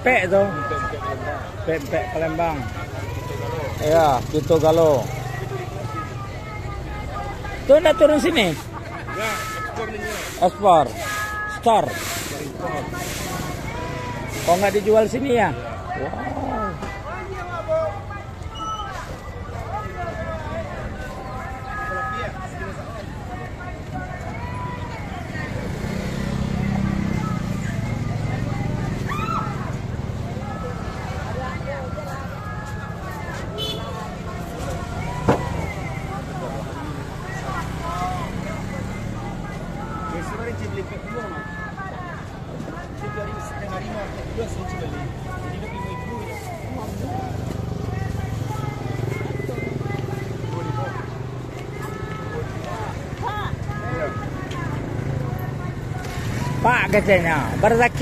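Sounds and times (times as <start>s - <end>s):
chatter of voices: 0.0s - 58.0s.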